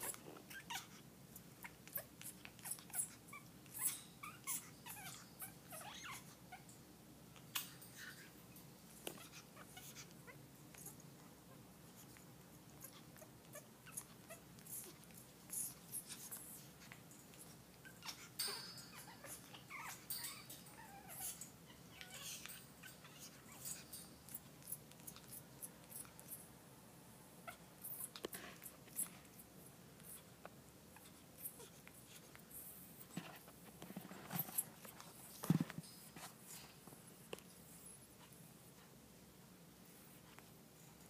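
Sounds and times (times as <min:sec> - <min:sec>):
faint room hum: 0:00.0 - 0:41.0.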